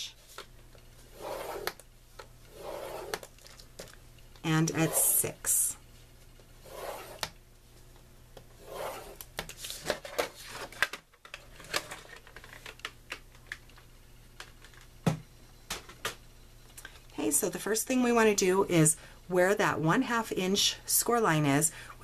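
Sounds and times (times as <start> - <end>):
stylus scoring cardstock: 4.6 - 5.5.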